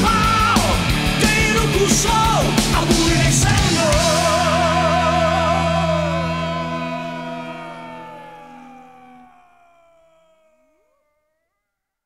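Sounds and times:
heavy metal music ringing notes: 0.0 - 10.1
wailing tone sliding in pitch: 4.8 - 11.6.

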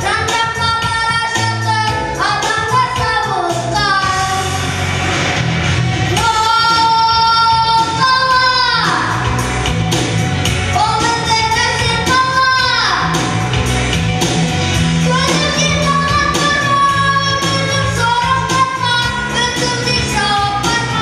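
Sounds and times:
boy singing into a microphone: 0.0 - 4.6, 6.1 - 9.3, 10.8 - 13.2, 15.0 - 21.0
instrumental backing music: 0.0 - 21.0.

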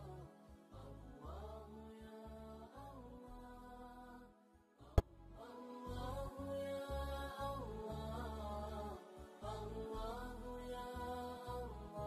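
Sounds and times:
slow chanted vocal music: 0.0 - 12.0.

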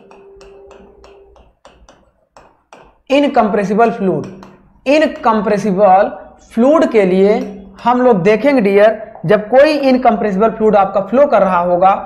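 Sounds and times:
marker pen writing on whiteboard: 0.0 - 5.9.

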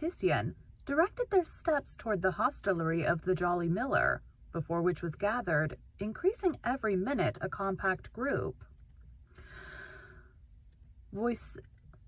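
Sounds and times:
faint low hum: 0.0 - 12.0
woman breathing: 9.3 - 10.5.

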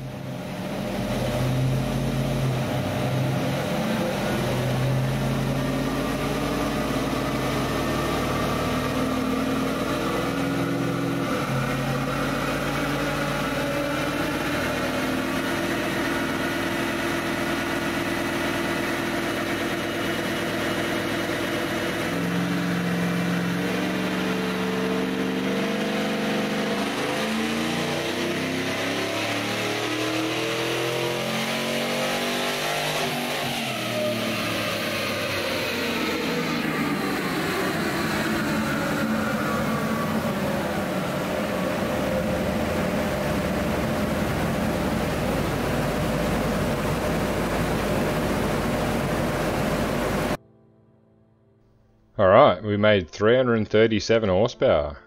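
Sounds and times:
engine running under load: 0.0 - 50.4.

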